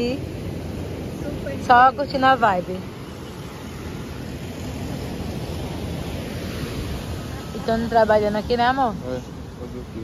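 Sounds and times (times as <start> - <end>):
surf rushing: 0.0 - 10.0
wind: 0.0 - 10.0.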